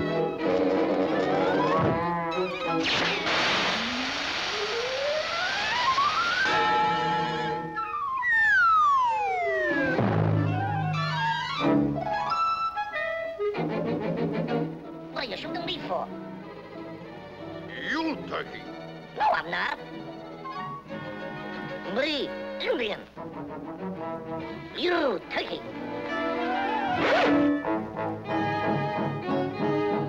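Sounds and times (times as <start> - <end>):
orchestral cartoon music: 0.0 - 3.5, 5.8 - 30.0
whistle glide: 3.0 - 12.7, 26.5 - 27.7.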